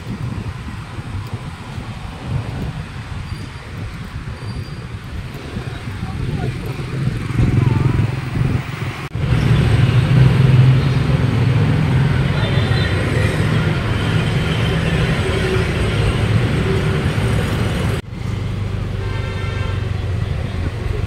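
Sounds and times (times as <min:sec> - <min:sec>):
low wind rumble: 0:00.0 - 0:21.0
scooters and motorbikes passing: 0:00.0 - 0:21.0
people's voices: 0:05.4 - 0:08.7.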